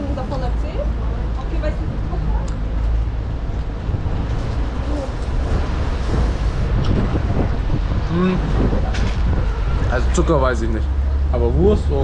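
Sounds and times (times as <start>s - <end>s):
street traffic: 0.0s - 12.0s
wind buffeting microphone: 0.0s - 12.0s.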